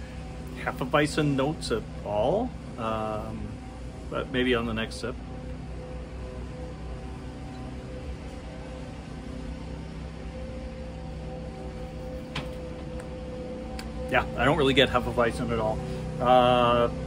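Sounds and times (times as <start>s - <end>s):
distant lawn mower engines droning: 0.0s - 17.0s.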